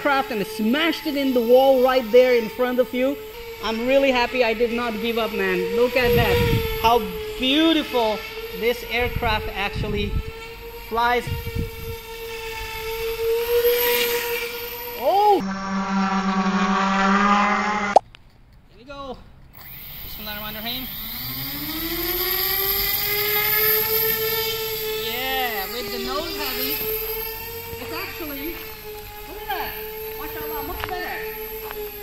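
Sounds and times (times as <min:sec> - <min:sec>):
drone motors whining: 0:00.0 - 0:18.0, 0:19.4 - 0:32.0.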